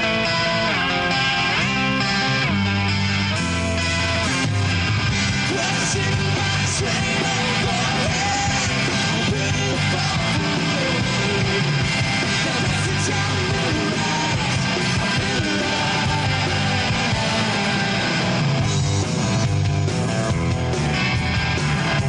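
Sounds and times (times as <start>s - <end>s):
drums: 0.0s - 22.0s
electric guitar: 0.0s - 22.0s
man singing into microphone: 5.4s - 18.1s.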